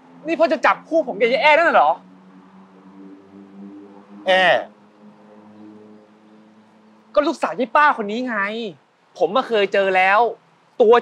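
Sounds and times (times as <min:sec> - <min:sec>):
faint sustained low chord music: 0:02.0 - 0:07.2.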